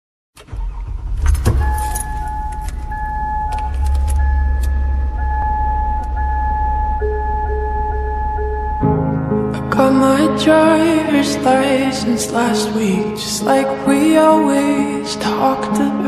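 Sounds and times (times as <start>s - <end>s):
car engine idling: 0.4s - 8.8s
clicks: 1.2s - 6.2s
keys jangling: 1.3s - 4.7s
car warning chime: 1.3s - 9.0s.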